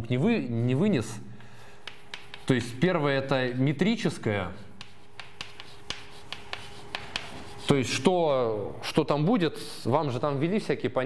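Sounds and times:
chalk tapping on blackboard: 0:01.5 - 0:07.8.

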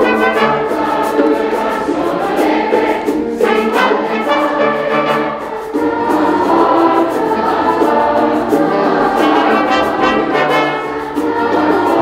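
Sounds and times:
choir singing held notes: 0:00.0 - 0:12.0
small band accompanying: 0:00.0 - 0:12.0.

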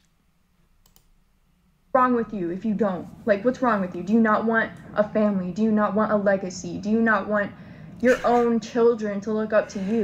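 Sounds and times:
faint mouse clicks: 0:00.8 - 0:01.1
speech: 0:02.0 - 0:10.0.

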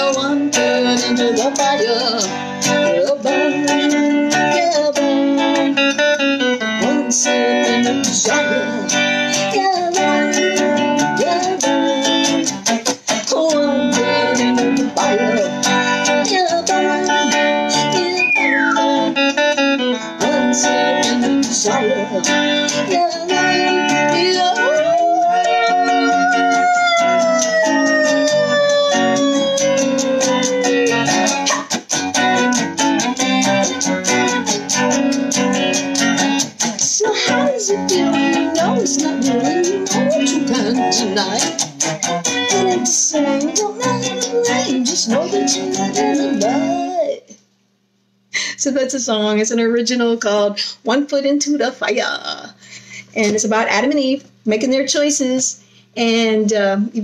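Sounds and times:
electric guitar solo: 0:00.0 - 0:47.1.

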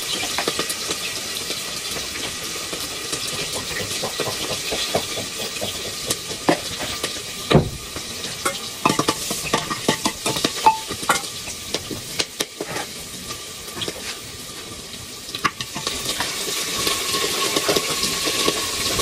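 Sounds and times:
oil sizzling in a pan: 0:00.0 - 0:19.0.

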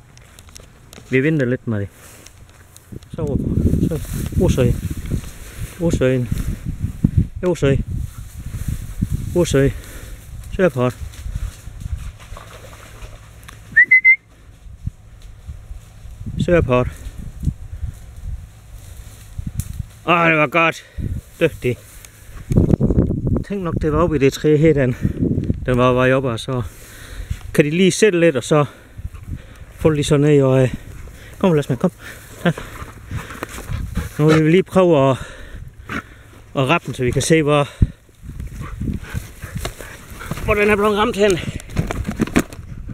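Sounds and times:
dog moving through long grass: 0:07.9 - 0:13.8, 0:17.0 - 0:20.6, 0:29.1 - 0:34.8, 0:38.2 - 0:41.4
short rising whistle: 0:13.7 - 0:14.3.

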